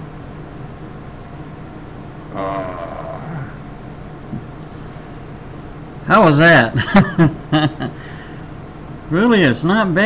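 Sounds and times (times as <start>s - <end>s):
steady low hum: 0.0s - 10.0s
man's throaty vocal sound: 2.3s - 3.6s.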